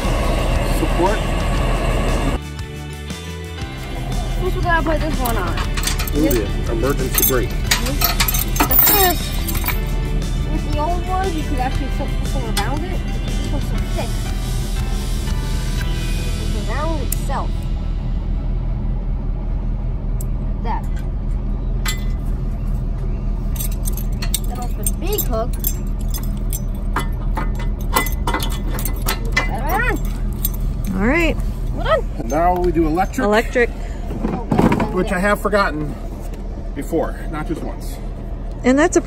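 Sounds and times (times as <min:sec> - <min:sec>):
background music: 0:00.0 - 0:19.2
metal chains clinking: 0:04.8 - 0:10.2, 0:21.8 - 0:22.2, 0:23.4 - 0:33.6.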